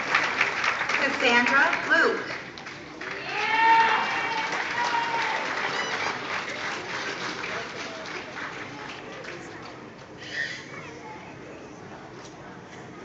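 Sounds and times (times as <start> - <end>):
audience applauding: 0.0 - 9.8
person cheering: 3.2 - 5.4.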